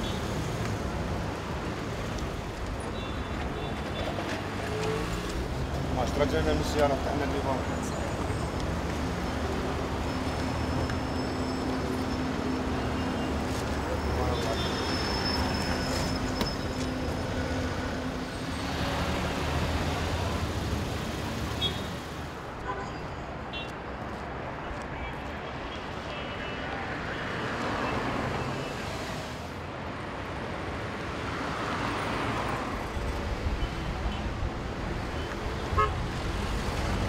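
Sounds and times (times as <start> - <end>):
cars passing by: 0.0 - 37.0.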